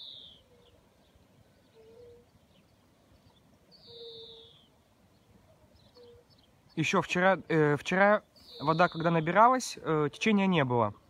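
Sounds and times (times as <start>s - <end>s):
bird's high down-slurred call: 0.0s - 0.8s, 1.6s - 2.6s, 3.2s - 4.8s, 5.5s - 6.5s, 8.3s - 9.4s.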